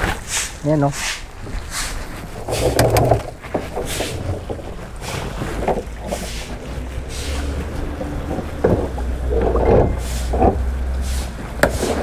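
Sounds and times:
plastic tub scraping on concrete: 0:01.6 - 0:12.0
low steady rumble: 0:02.1 - 0:12.0.

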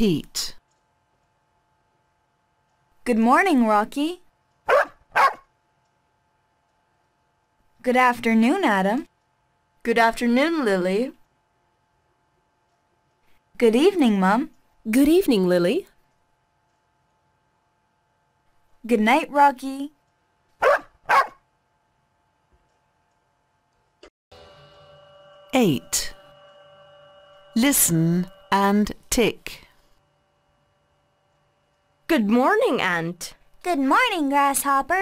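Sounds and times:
recorded greeting: 0:03.0 - 0:04.3, 0:07.8 - 0:09.1, 0:09.8 - 0:11.2, 0:13.6 - 0:16.0, 0:18.8 - 0:20.0, 0:24.3 - 0:35.0
dog barking: 0:04.7 - 0:05.5, 0:20.6 - 0:21.4.

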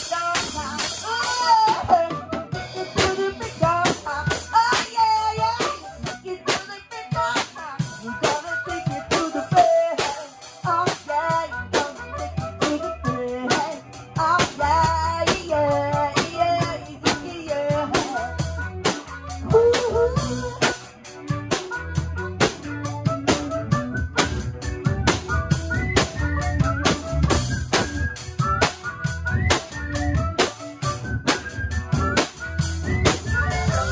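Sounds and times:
drum kit beat: 0:00.0 - 0:33.9
electric bass: 0:00.0 - 0:33.9
electric guitar: 0:00.0 - 0:33.9.

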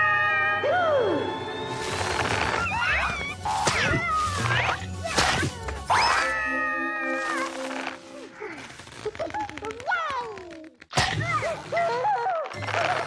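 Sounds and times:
cartoon music: 0:02.4 - 0:08.3.

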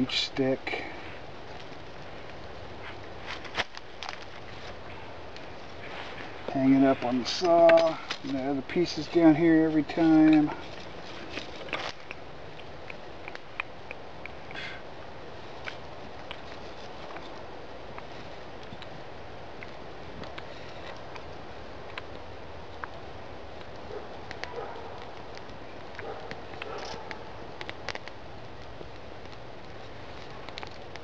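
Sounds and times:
outdoor background hiss: 0:00.0 - 0:31.0.

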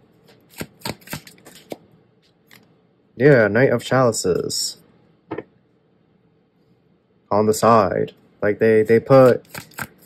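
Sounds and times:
cards handled: 0:00.4 - 0:02.7
sharp snaps of card stock: 0:00.5 - 0:01.8, 0:09.2 - 0:10.0.

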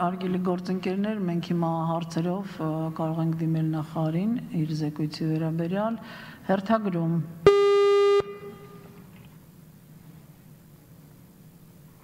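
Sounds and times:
woman speaking: 0:00.0 - 0:07.4
electronic buzzing beep: 0:07.5 - 0:09.0.

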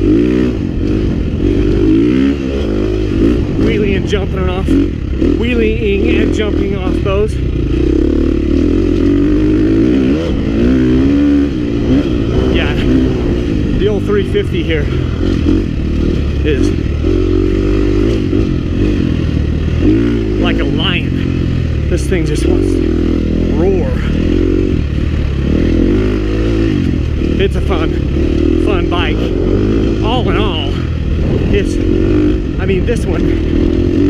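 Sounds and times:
motorcycle engine revving: 0:00.0 - 0:34.0.

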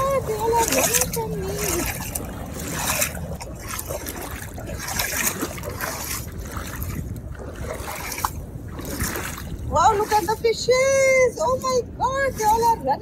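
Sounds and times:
seawater sloshing from wading: 0:00.0 - 0:13.0
steady low rumble: 0:00.0 - 0:13.0.

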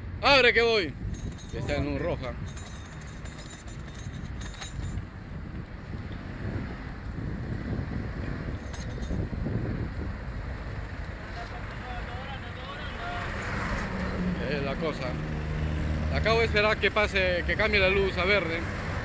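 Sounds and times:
buses and cars passing: 0:00.0 - 0:19.0
bicycle basket rattling: 0:01.1 - 0:05.0.

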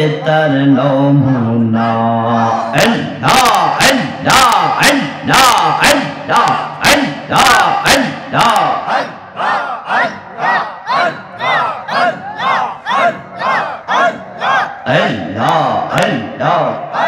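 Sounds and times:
rhythmic chanting over loudspeakers: 0:00.0 - 0:17.0.

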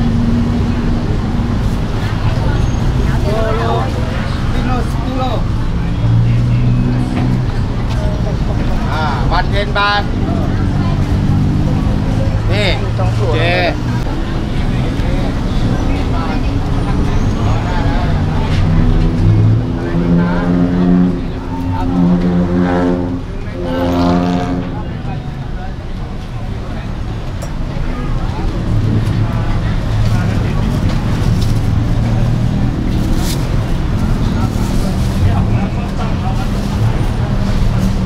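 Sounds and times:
people talking: 0:00.0 - 0:38.0
road traffic passing: 0:00.0 - 0:38.0.

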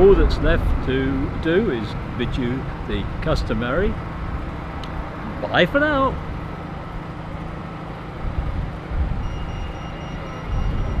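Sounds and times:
low traffic rumble: 0:00.0 - 0:11.0
faint high-pitched beep: 0:09.2 - 0:11.0.

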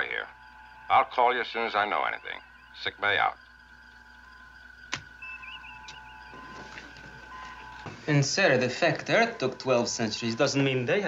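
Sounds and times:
steady electronic hum: 0:00.0 - 0:11.0
warbling computer tone: 0:00.0 - 0:11.0
intercom switch click: 0:04.9 - 0:06.1.

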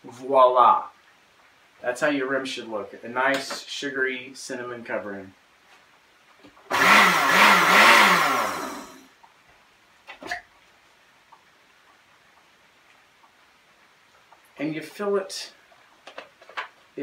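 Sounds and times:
blender motor running: 0:06.7 - 0:09.1.

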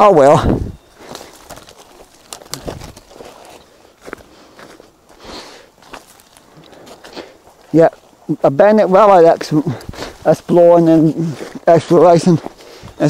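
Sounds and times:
twigs cracking: 0:00.0 - 0:08.3, 0:08.9 - 0:13.0
footsteps through dry leaves: 0:00.8 - 0:08.3, 0:09.2 - 0:13.0.

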